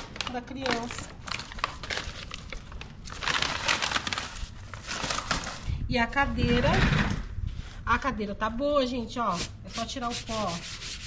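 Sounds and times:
paper rustling and crinkling: 0:00.0 - 0:05.7.

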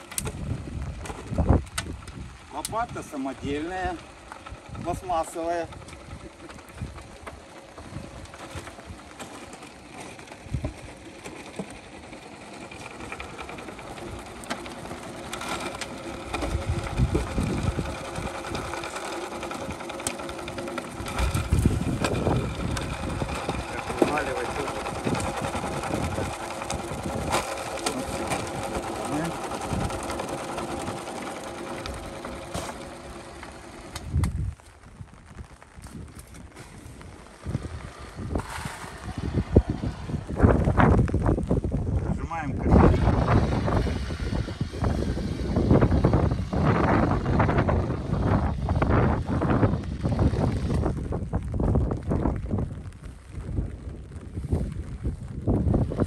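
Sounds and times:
soil sieve mesh rattling: 0:02.6 - 0:34.7, 0:35.4 - 0:41.8.

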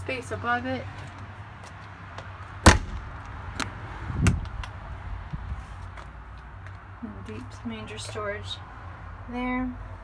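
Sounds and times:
heavy door thud: 0:02.6 - 0:03.1.

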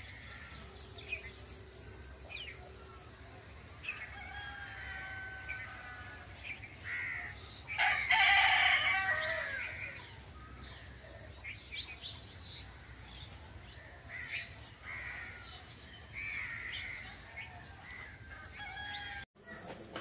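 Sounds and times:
high insect buzz: 0:00.0 - 0:19.2
rooster crowing: 0:03.8 - 0:10.1, 0:17.6 - 0:19.6
small birds chirping: 0:06.4 - 0:19.2.

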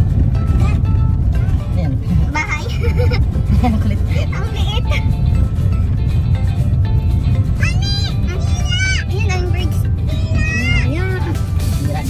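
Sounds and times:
car driving on dirt track: 0:00.0 - 0:12.0
music playing: 0:00.0 - 0:12.0.

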